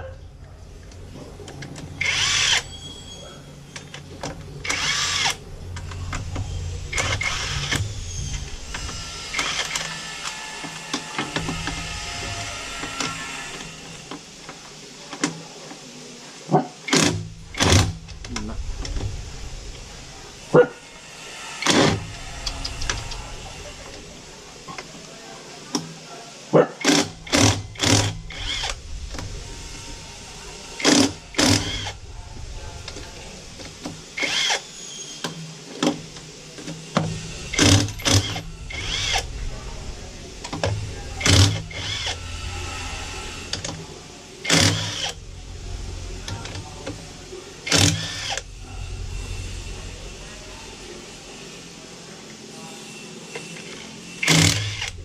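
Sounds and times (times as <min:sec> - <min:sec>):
cordless impact wrench bursts: 0:02.0 - 0:02.7, 0:04.6 - 0:05.4, 0:26.8 - 0:28.8, 0:30.8 - 0:32.0, 0:34.2 - 0:34.7, 0:37.5 - 0:39.2, 0:44.4 - 0:45.2, 0:47.6 - 0:48.4, 0:53.6 - 0:55.0.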